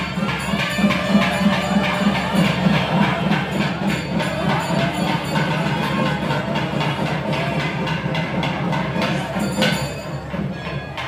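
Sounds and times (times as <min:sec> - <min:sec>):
nadaswaram gliding melody: 0:00.0 - 0:11.0
percussion strikes: 0:00.0 - 0:11.0.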